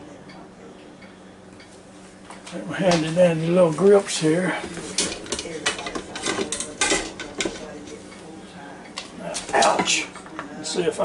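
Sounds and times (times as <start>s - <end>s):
metal basket clanking in pot: 4.8s - 7.7s.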